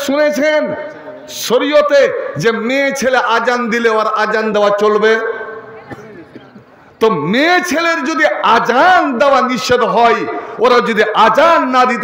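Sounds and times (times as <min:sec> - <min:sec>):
man preaching into a microphone: 0:00.0 - 0:05.6, 0:07.0 - 0:12.0.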